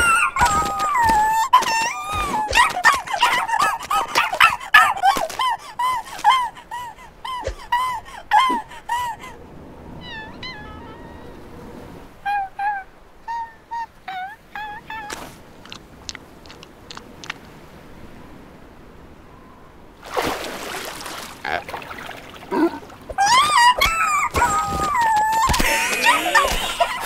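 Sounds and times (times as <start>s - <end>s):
cartoon seal squeaky yelps: 0.0s - 5.4s, 10.0s - 11.3s, 12.3s - 15.8s, 23.1s - 27.0s.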